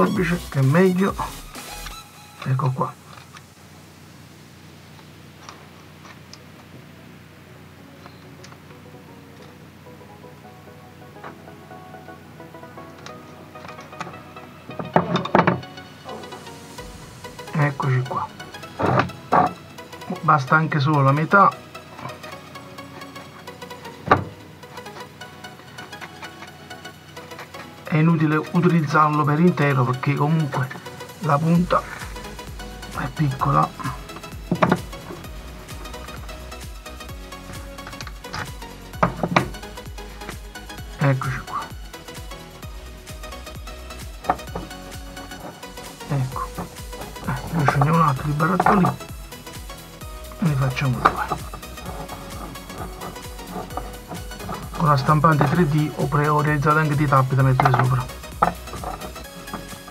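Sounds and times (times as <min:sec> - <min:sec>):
background music: 0:00.0 - 0:59.9.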